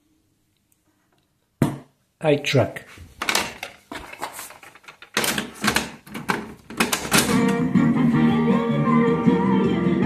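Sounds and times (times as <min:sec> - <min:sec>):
strummed guitar music: 0:07.4 - 0:10.0.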